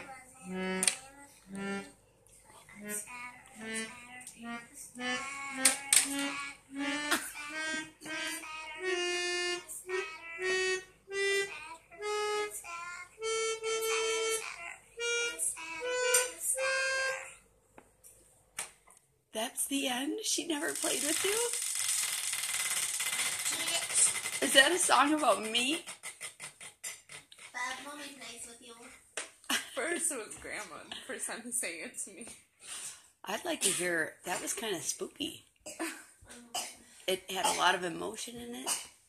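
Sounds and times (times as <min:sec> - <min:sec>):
electronic keyboard single notes: 0:00.5 - 0:01.9, 0:03.6 - 0:12.5, 0:13.2 - 0:14.4.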